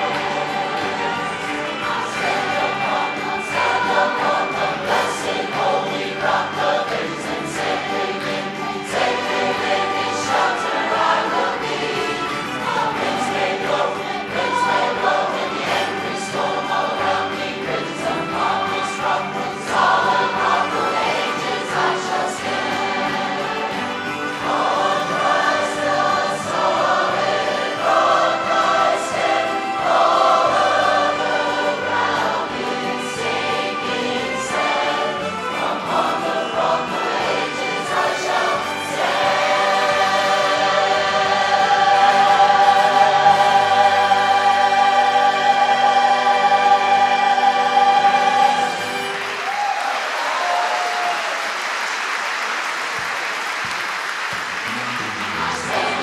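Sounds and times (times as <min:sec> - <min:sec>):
choir singing a worship song: 0:00.0 - 0:49.5, 0:55.3 - 0:56.0.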